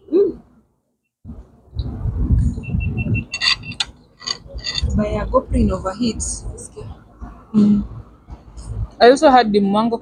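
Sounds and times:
low rumble: 0:01.2 - 0:09.0.

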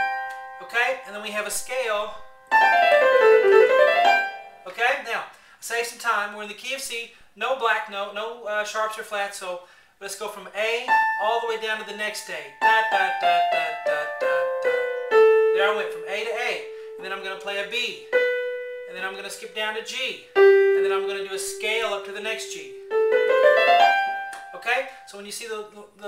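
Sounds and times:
piano descending scale: 0:00.0 - 0:04.7, 0:10.9 - 0:25.1.

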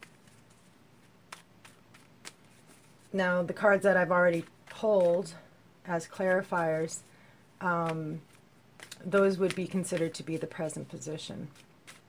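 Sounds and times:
cards shuffled by hand: 0:00.0 - 0:03.2, 0:04.0 - 0:05.4, 0:07.8 - 0:12.0.

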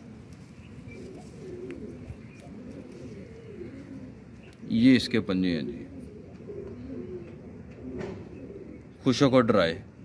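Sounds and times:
pigeons cooing: 0:00.0 - 0:09.2.

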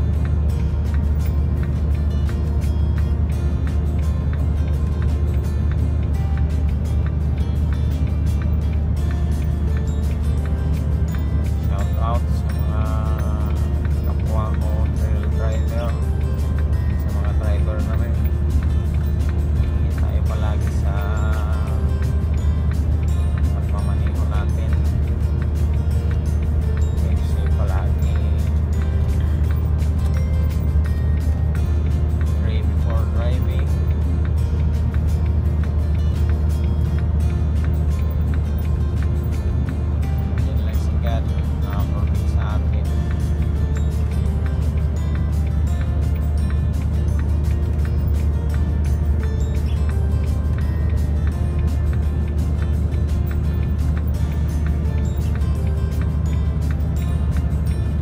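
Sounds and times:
music playing: 0:00.0 - 0:58.0
truck engine drone and road noise: 0:00.0 - 0:58.0.

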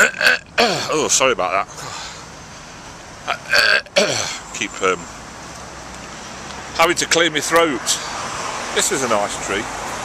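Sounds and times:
man coughing: 0:00.0 - 0:01.0, 0:03.5 - 0:04.4
outdoor background: 0:00.0 - 0:10.0.

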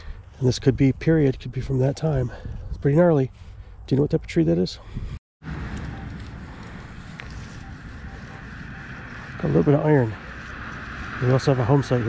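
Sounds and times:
outdoor background rumble and hiss: 0:05.4 - 0:12.0
metal detector beeps: 0:05.7 - 0:09.7.

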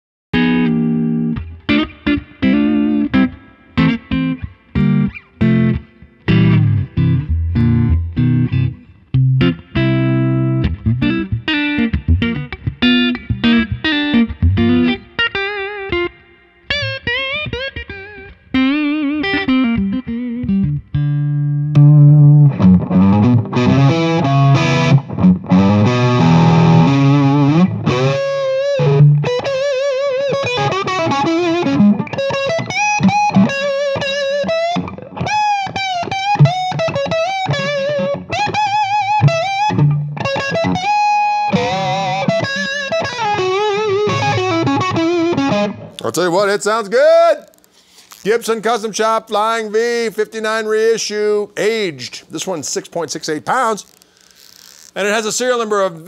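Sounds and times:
electric guitar lead playing: 0:00.4 - 0:46.1.

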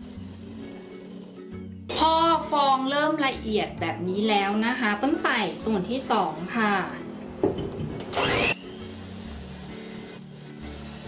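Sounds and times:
electric hand mixer whirring: 0:00.0 - 0:01.7, 0:07.9 - 0:11.0.

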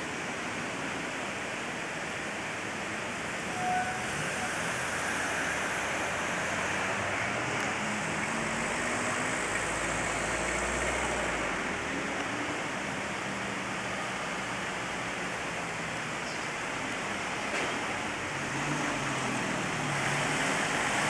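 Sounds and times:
street ambience hiss: 0:00.0 - 0:21.0.

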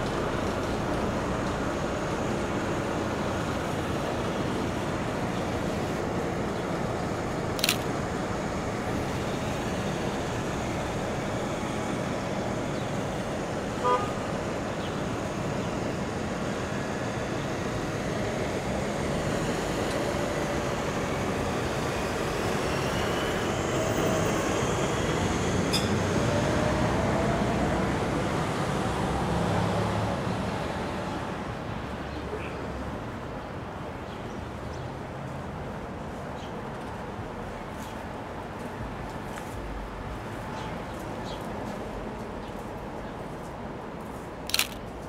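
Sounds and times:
vehicle pulling away whine: 0:15.8 - 0:30.9.

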